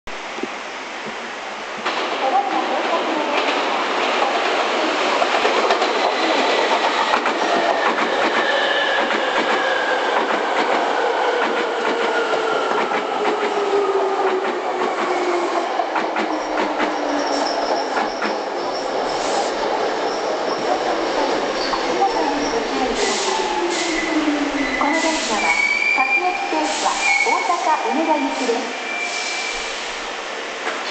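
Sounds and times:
high squeal: 16.3 - 19.2, 21.6 - 27.5, 28.7 - 29.7.

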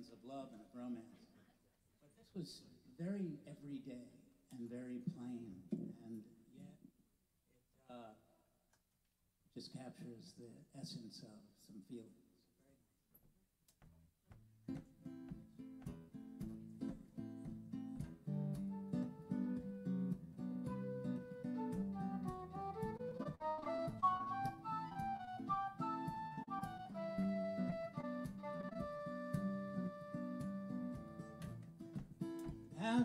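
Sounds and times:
acoustic guitar playing: 14.6 - 33.0
wind instrument melody: 18.6 - 31.6.

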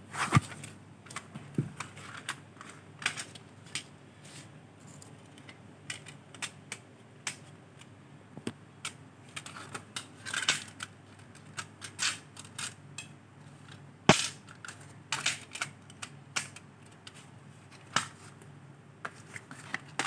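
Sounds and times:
plastic cd cases clicking and rattling: 0.3 - 3.9, 4.9 - 7.9, 8.8 - 18.2, 19.0 - 20.0.

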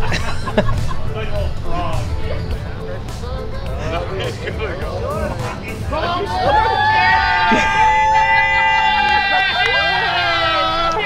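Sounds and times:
people cheering with long calls: 5.4 - 11.0.

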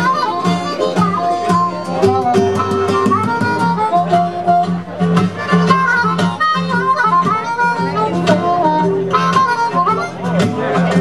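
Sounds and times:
harmonica bending notes: 0.0 - 11.0
strummed guitar with bass line: 0.0 - 11.0.

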